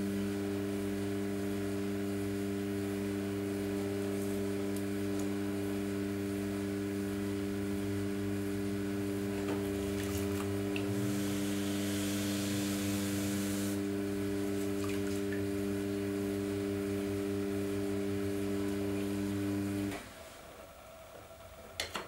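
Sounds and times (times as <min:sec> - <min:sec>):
pottery wheel motor humming: 0:00.0 - 0:20.0
wet sponge hissing on clay: 0:11.0 - 0:13.8.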